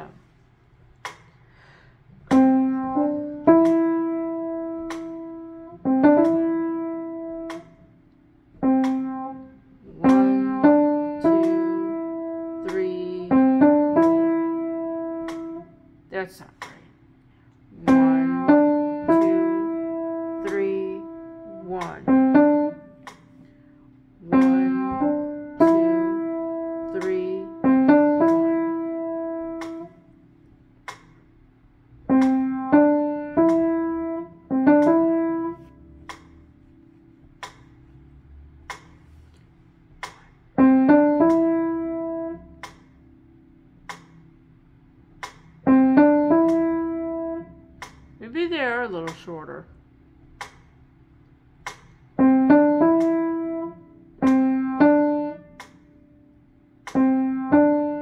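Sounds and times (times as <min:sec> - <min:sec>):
piano phrase being practised: 0:02.2 - 0:16.8, 0:17.6 - 0:31.4, 0:32.0 - 0:49.6, 0:51.6 - 0:58.0.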